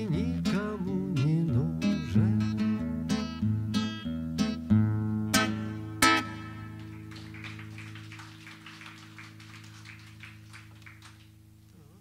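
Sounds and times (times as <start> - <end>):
acoustic guitar chord ringing: 0.1 - 7.6
sparse hand claps: 6.6 - 11.4.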